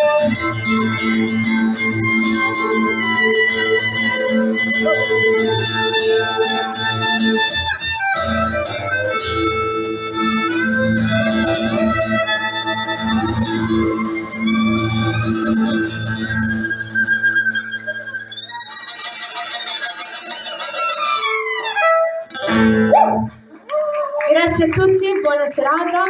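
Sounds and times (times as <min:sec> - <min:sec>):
violin: 0:00.0 - 0:22.9
acoustic guitar: 0:00.0 - 0:23.6.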